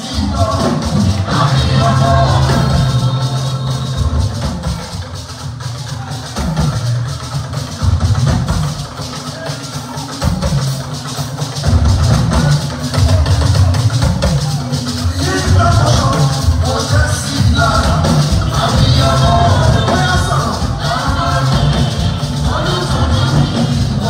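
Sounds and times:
person singing: 0:00.0 - 0:05.1, 0:14.6 - 0:24.0
church band music: 0:00.0 - 0:24.0
drum kit: 0:00.0 - 0:24.0
deep bass line: 0:01.0 - 0:04.7, 0:17.4 - 0:24.0.

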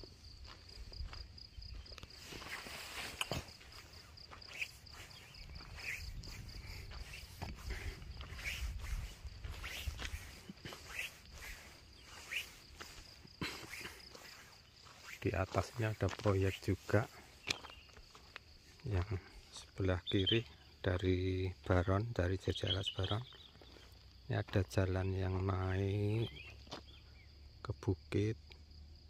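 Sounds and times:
footsteps walking: 0:00.0 - 0:19.5, 0:23.3 - 0:24.6
insects chirping: 0:00.0 - 0:29.0.

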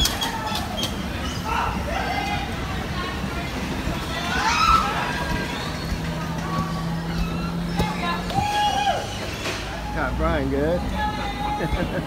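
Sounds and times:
bumper car ride hum: 0:00.0 - 0:12.0
faint voices: 0:00.0 - 0:12.0.

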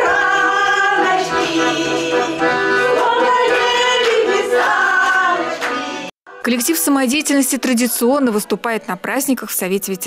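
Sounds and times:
women singing in chorus: 0:00.0 - 0:06.1.

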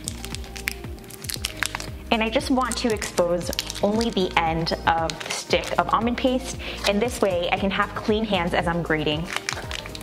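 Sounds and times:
foil wrapper crinkling: 0:00.0 - 0:07.2, 0:09.1 - 0:10.0
background music: 0:00.0 - 0:10.0.

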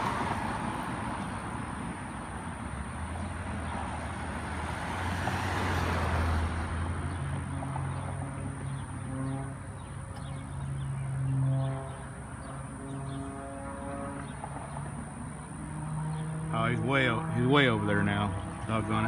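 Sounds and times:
propeller airplane engine droning: 0:00.0 - 0:19.0.

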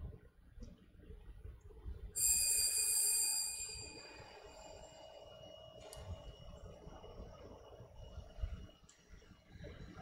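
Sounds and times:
bright high ringing tone: 0:02.2 - 0:09.5.

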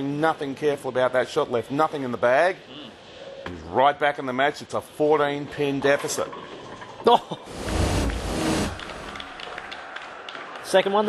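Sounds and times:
low rumble: 0:07.5 - 0:09.3
background hum: 0:07.5 - 0:09.4.

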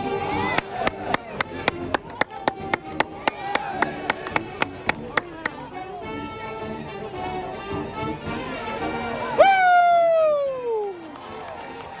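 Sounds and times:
low background murmur: 0:00.0 - 0:12.0.

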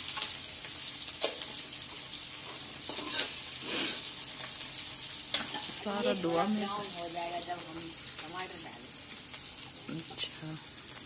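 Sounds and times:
onion sizzling in hot oil: 0:00.0 - 0:11.0.

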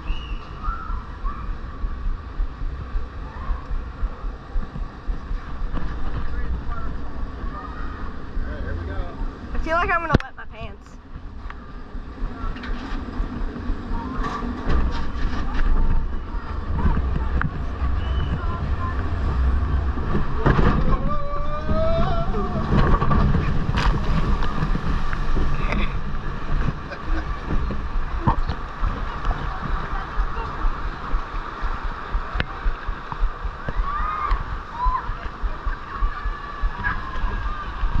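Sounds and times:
steady low rumble: 0:00.0 - 0:38.0
water sloshing and splashing: 0:21.8 - 0:38.0.

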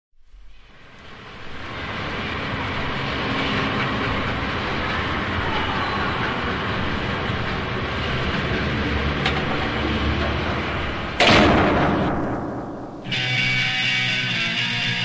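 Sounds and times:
steady train-like rumbling: 0:00.2 - 0:15.0.

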